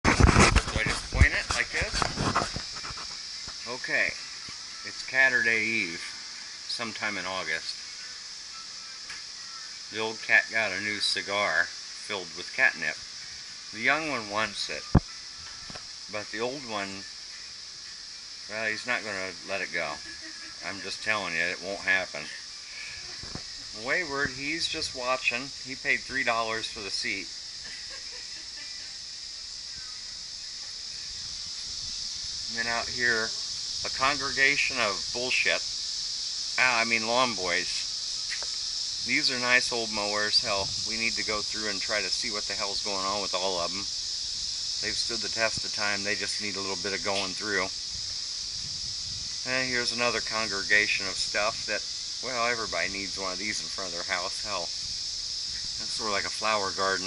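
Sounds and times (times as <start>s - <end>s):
insects droning: 0.0s - 57.0s
faint steady hiss: 0.1s - 57.0s.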